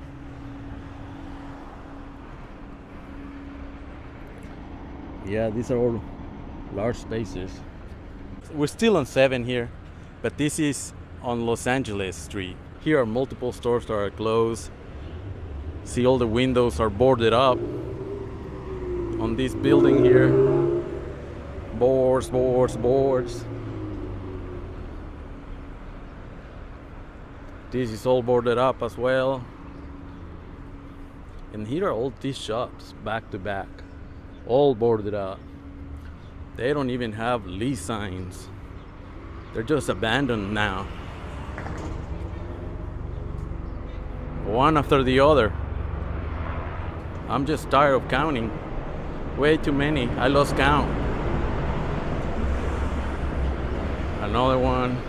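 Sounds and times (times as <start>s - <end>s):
cars driving by: 0.0s - 55.0s
distant traffic: 0.0s - 55.0s.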